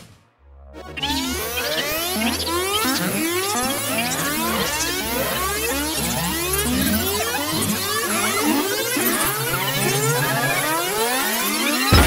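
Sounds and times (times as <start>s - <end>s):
synthesizer music: 0.5s - 3.4s.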